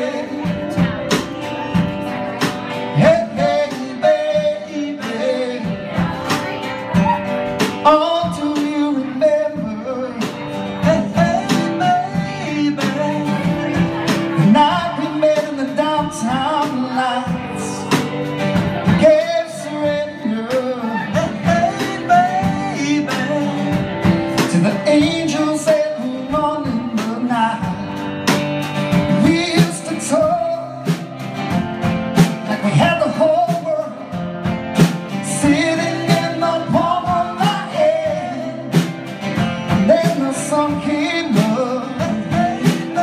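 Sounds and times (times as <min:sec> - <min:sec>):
man singing: 0:00.0 - 0:31.5, 0:32.2 - 0:43.0
acoustic guitar strumming: 0:00.0 - 0:43.0.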